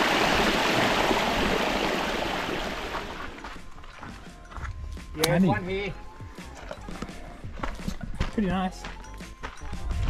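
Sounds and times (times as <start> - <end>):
footsteps on dirt path: 2.9 - 10.0
quiet background music: 3.2 - 10.0.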